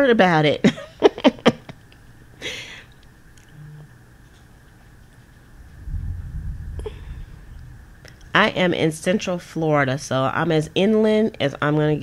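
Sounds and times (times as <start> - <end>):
woman laughing: 0.6 - 1.8
low handling rumble: 5.4 - 9.2
breathy hiss: 6.7 - 8.3.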